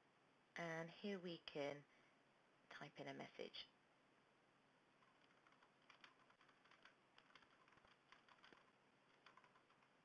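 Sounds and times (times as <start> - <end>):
computer keyboard typing: 5.0 - 10.0.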